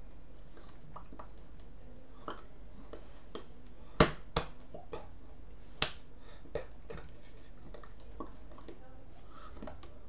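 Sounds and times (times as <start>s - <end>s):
hands slapping chest and together: 5.8s - 6.0s.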